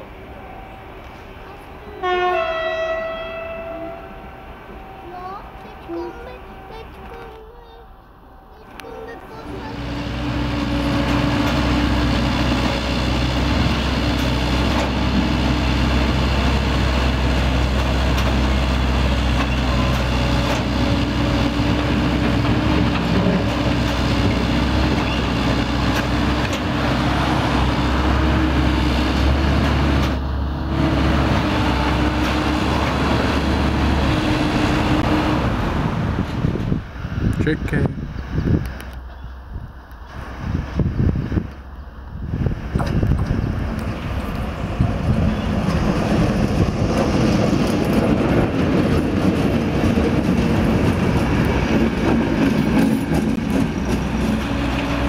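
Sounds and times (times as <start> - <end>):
heavy diesel engine running: 9.4 - 39.2, 42.2 - 55.0.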